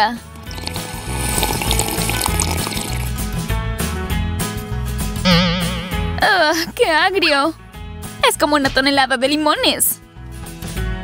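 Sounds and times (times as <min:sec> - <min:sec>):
background music with steady beat: 0:00.0 - 0:11.0
drink sucked through straw: 0:00.4 - 0:03.2.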